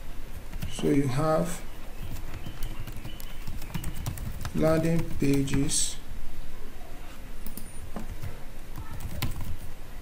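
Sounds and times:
computer keyboard keystrokes: 0:02.1 - 0:05.7, 0:08.1 - 0:09.6.

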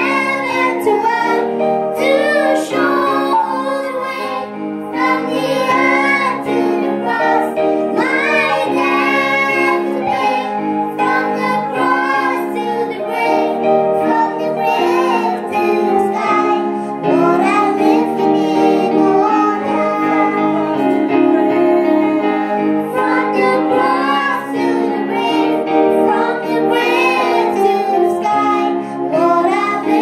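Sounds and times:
children singing: 0:00.0 - 0:30.0
electronic keyboard chords: 0:00.0 - 0:30.0
girl singing into microphone: 0:00.0 - 0:30.0.

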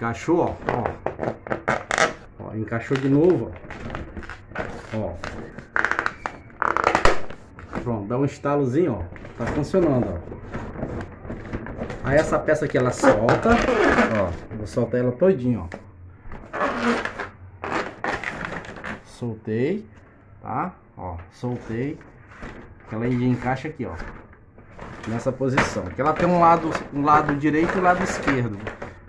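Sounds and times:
plastic scraping and clicking: 0:00.4 - 0:07.9, 0:09.0 - 0:15.0, 0:21.4 - 0:29.0.

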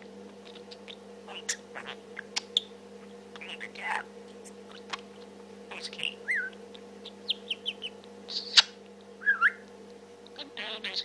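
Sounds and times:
budgerigar chirping and whistling: 0:00.5 - 0:02.7, 0:03.4 - 0:04.1, 0:05.7 - 0:09.6, 0:10.4 - 0:11.0.

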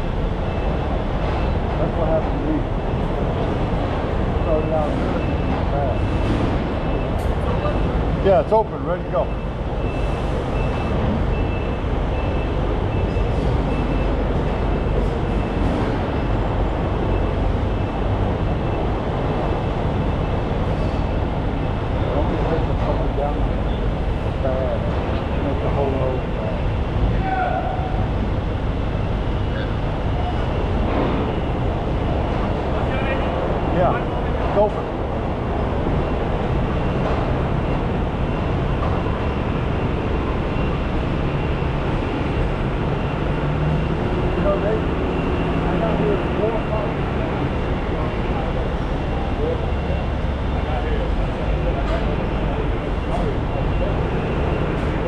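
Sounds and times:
heavy machinery drone: 0:00.0 - 0:55.0.

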